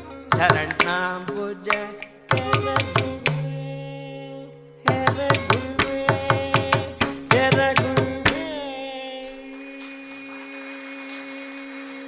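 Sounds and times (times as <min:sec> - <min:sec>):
drum stroke: 0:00.0 - 0:04.0, 0:04.8 - 0:08.6.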